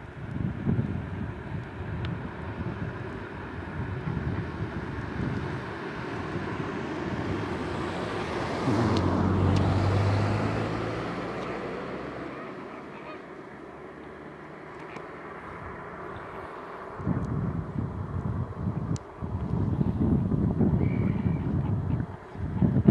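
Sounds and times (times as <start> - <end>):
engine hum: 0.0 - 22.9
flamingos honking: 5.4 - 17.0, 20.8 - 22.8.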